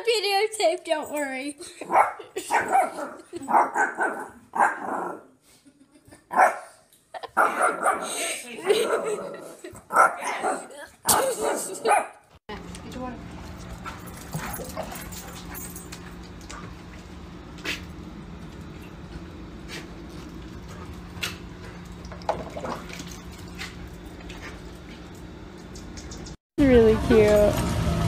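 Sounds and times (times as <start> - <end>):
small dog barking: 1.9 - 5.2, 6.3 - 6.8, 7.4 - 8.1, 9.9 - 12.2.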